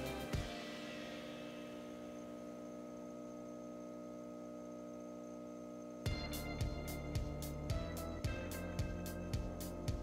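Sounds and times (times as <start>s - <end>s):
steady hum of held tones: 0.0s - 10.0s.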